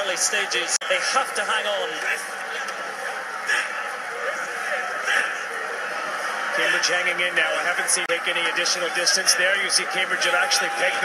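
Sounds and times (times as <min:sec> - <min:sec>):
crowd voices and shouts: 0:00.0 - 0:11.0.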